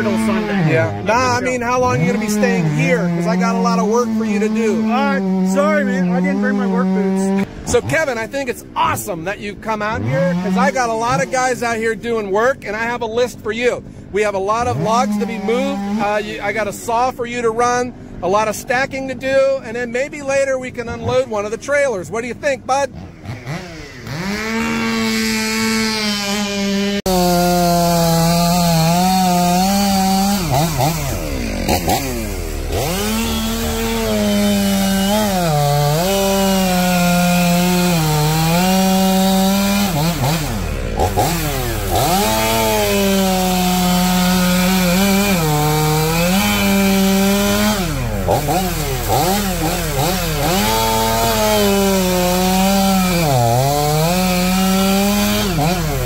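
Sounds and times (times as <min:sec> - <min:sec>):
chainsaw cutting log: 0:00.0 - 0:13.3, 0:14.5 - 0:17.1, 0:22.7 - 0:56.0.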